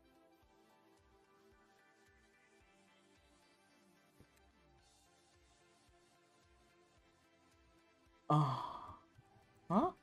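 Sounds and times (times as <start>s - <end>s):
man sighing: 8.3s - 9.0s.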